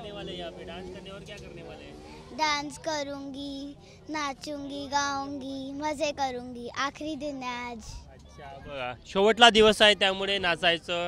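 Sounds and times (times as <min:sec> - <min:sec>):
young girl singing: 0:02.3 - 0:08.0.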